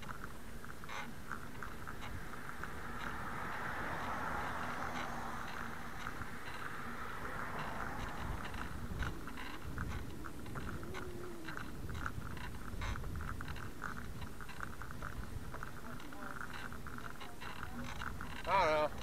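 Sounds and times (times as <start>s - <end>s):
road rumble: 0.0s - 19.0s
small clicks and rattles: 0.0s - 19.0s
wind: 0.0s - 19.0s.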